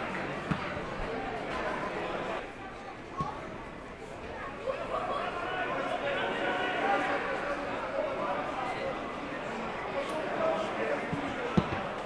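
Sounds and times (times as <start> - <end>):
players shouting: 4.8 - 8.6.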